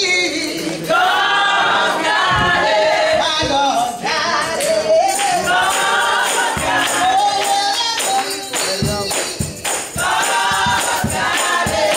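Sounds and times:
choir singing gospel: 0.0 - 11.9
tambourine shaking: 4.9 - 11.9.

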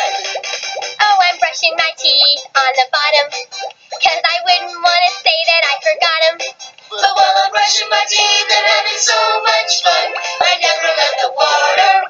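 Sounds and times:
girl singing: 1.0 - 3.4, 4.0 - 12.0.

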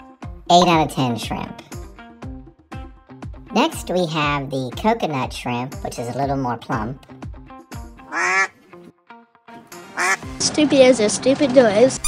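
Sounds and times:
quiet background music: 0.2 - 8.8
nasal quack-like honks: 8.1 - 8.5, 10.0 - 10.3.

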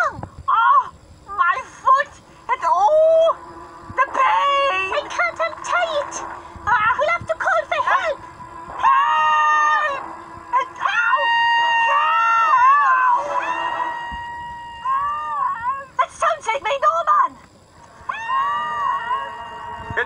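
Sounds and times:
person howling: 8.0 - 15.9.

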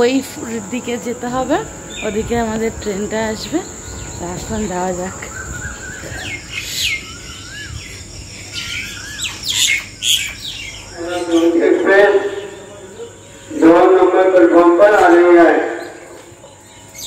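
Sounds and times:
person speaking: 0.0 - 5.3, 11.0 - 16.1
wavering whistle: 0.0 - 8.1
birds chirping: 0.0 - 17.0.

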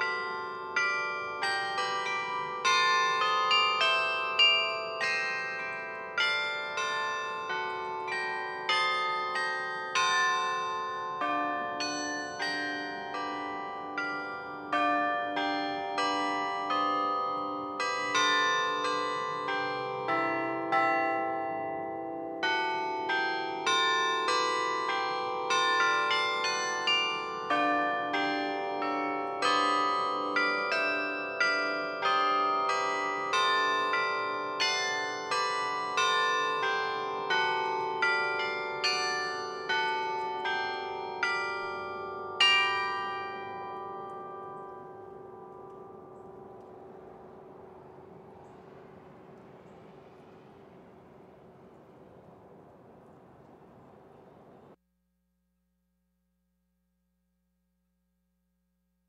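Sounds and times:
carillon bells melody: 0.0 - 54.8.

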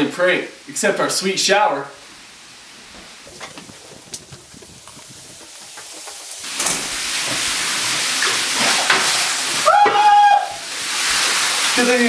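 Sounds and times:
shower spray running: 2.8 - 12.0.

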